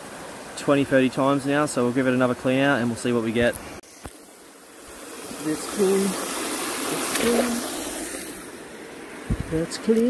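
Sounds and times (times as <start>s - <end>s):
water gushing: 0.0s - 10.0s.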